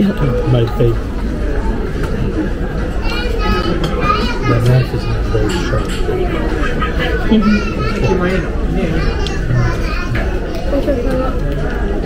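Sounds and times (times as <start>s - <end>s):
child speaking: 3.0s - 5.9s, 7.3s - 11.4s
deeper voice: 3.3s - 6.0s, 7.5s - 10.3s.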